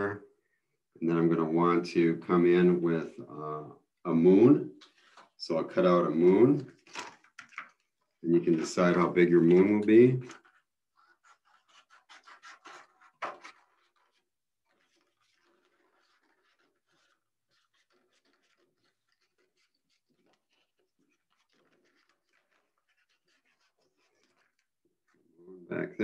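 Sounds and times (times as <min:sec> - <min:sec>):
faint paper handling: 0:04.8 - 0:25.3
scissors cutting paper: 0:10.2 - 0:24.7.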